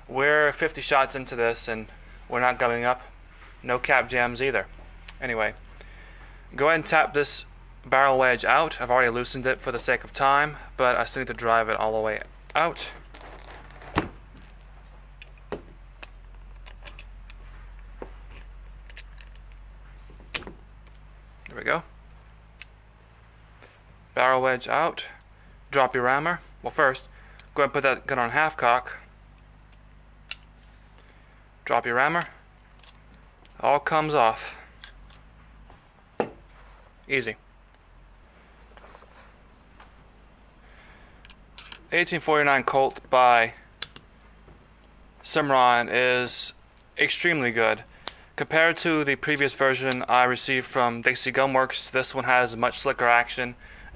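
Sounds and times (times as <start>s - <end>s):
man talking: 0.1s - 5.6s, 6.5s - 13.0s, 21.5s - 21.9s, 24.1s - 29.1s, 31.6s - 32.4s, 33.6s - 34.7s, 37.1s - 37.4s, 41.9s - 43.6s, 45.2s - 53.9s.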